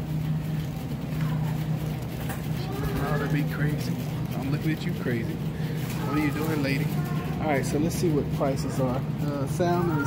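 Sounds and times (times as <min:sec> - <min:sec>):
low machinery hum: 0:00.0 - 0:10.0
store noise: 0:00.0 - 0:10.0.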